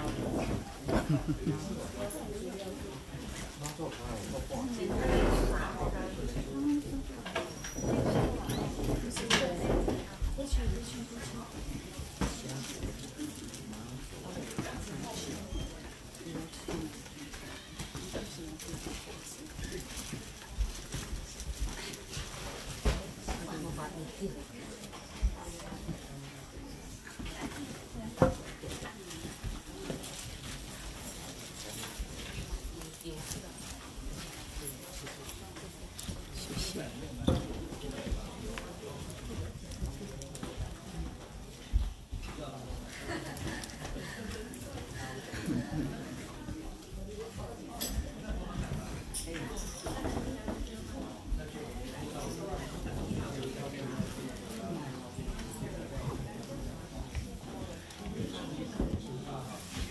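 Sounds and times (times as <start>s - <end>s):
murmur of voices: 0.0s - 59.9s.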